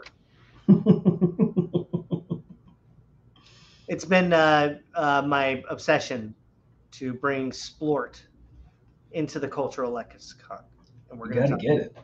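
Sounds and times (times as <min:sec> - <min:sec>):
man laughing: 0:00.7 - 0:02.7.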